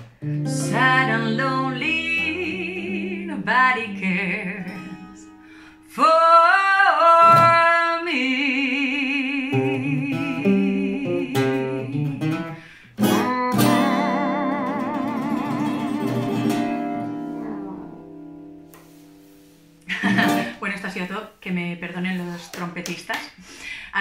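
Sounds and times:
acoustic guitar playing: 0.0 - 6.1, 7.2 - 7.8, 8.9 - 20.7
woman singing with vibrato: 0.4 - 12.2, 13.1 - 18.4.

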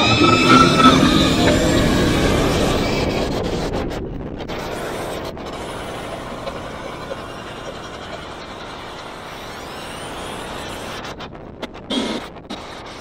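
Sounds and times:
roller coaster rumbling on track: 0.0 - 10.8
faint rising whine: 0.0 - 11.6.

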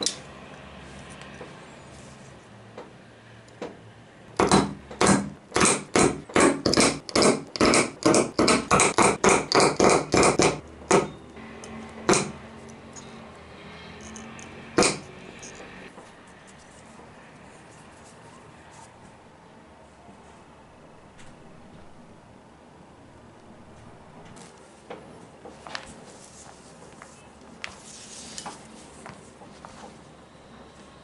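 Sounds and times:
hole punch snapping through leather: 4.4 - 11.1.

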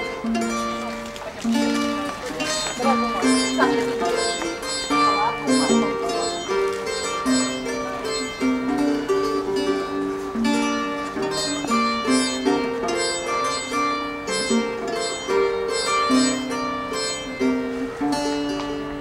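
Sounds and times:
plucked lute folk melody: 0.0 - 19.0.

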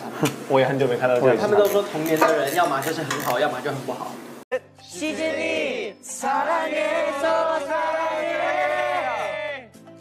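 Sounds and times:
men talking: 0.5 - 4.2.

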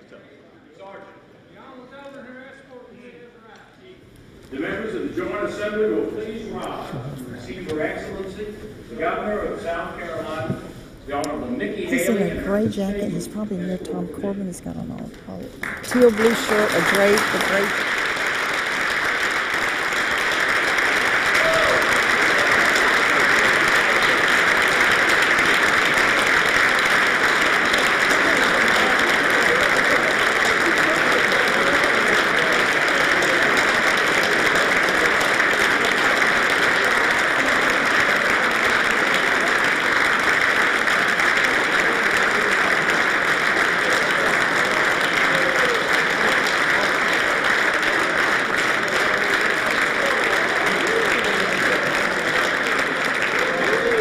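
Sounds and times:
large audience applauding: 15.6 - 54.0.

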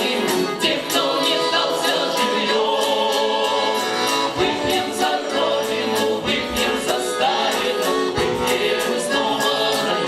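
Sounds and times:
accordion: 0.0 - 10.0
vocal ensemble singing in harmony: 0.0 - 10.0.

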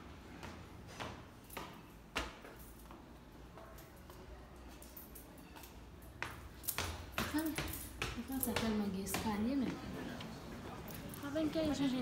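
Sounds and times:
footsteps on stairs: 6.1 - 10.4.

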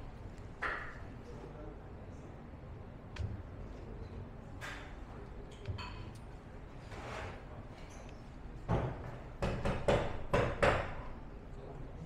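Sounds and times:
sharp knocks on hard surface: 8.7 - 11.1.

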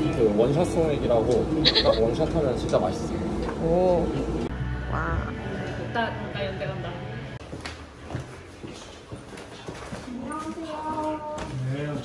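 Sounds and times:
footsteps in a hallway: 7.4 - 12.0.

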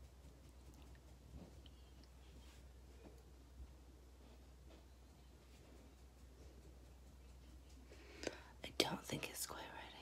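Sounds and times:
woman speaking softly: 8.6 - 10.0.

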